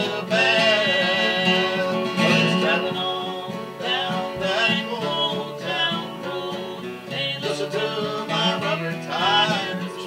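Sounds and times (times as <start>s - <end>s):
acoustic guitars strumming: 0.0s - 10.0s
woman and man singing folk duet: 0.0s - 10.0s.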